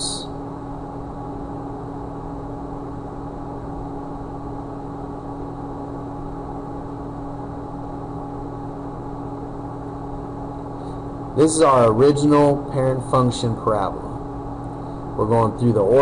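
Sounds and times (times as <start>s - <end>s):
steady background hum: 0.0s - 16.0s.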